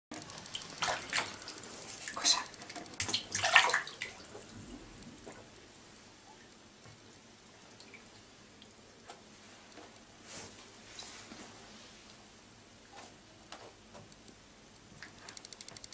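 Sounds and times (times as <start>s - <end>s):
water splashing in a bathtub: 0.1s - 10.0s.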